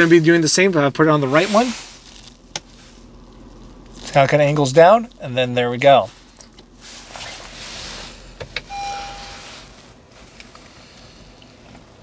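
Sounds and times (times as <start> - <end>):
single-tone electronic chime: 8.7 - 9.7.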